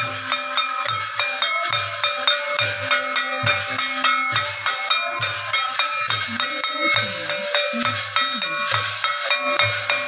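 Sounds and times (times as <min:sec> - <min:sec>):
clashing cymbals: 0:00.0 - 0:10.0.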